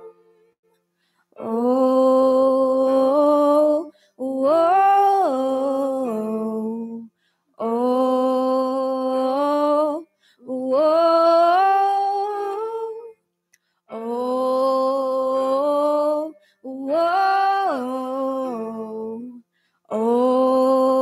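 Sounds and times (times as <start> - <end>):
person humming a melody: 1.3 - 13.2, 13.9 - 21.0.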